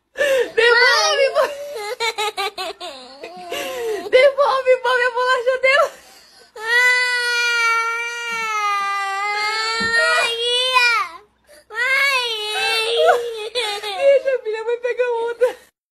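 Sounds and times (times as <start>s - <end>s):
toddler crying: 0.7s - 4.0s, 6.6s - 14.1s.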